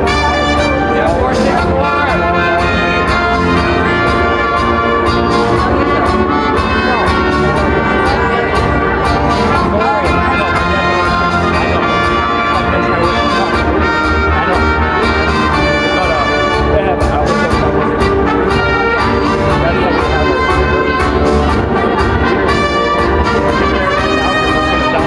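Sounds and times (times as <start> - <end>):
tango music with brass: 0.0 - 25.0.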